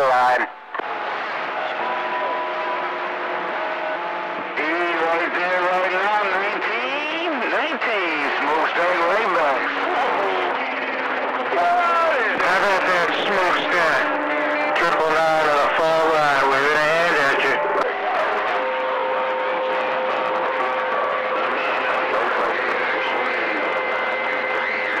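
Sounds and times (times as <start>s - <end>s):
garbled radio voices: 0.0s - 2.9s, 4.3s - 25.0s
radio static hiss: 0.0s - 3.6s, 4.4s - 11.2s, 12.1s - 17.9s, 19.2s - 25.0s.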